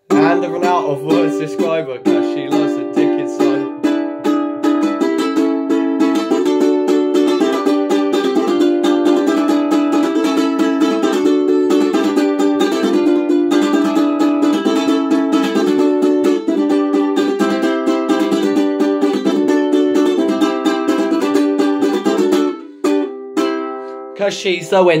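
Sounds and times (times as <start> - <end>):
ukulele strumming chords: 0.0 - 24.9.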